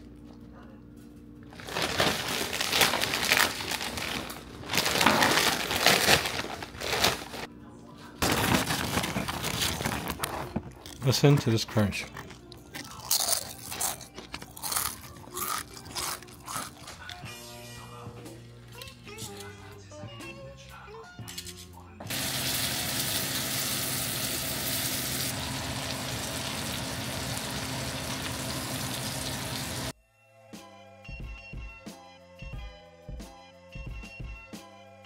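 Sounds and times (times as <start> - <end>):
potato chips crunching: 1.5 - 7.5, 8.2 - 17.3
background music: 10.5 - 35.0
fish sizzling in butter: 22.1 - 29.9.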